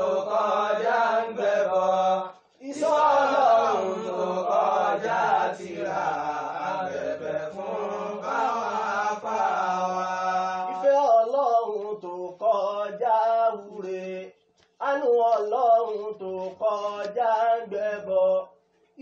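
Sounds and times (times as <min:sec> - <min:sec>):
men chanting: 0:00.0 - 0:14.2.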